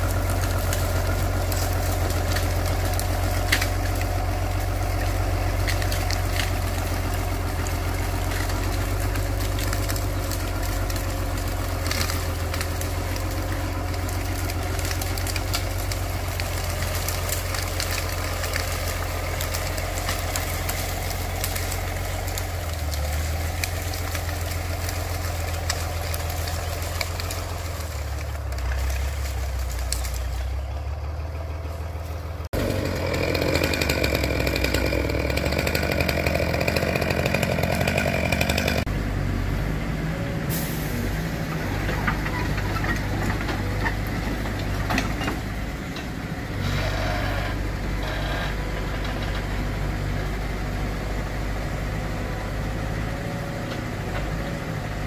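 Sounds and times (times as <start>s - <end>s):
mini excavator working: 0.0s - 55.0s
tractor engine droning: 0.0s - 55.0s.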